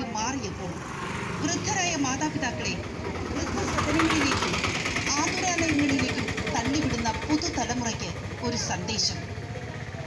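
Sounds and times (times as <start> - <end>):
motor scooter passing: 0.0 - 10.0.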